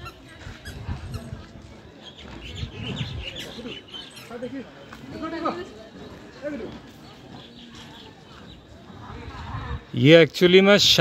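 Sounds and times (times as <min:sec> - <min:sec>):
indistinct background voices: 0:00.0 - 0:10.2.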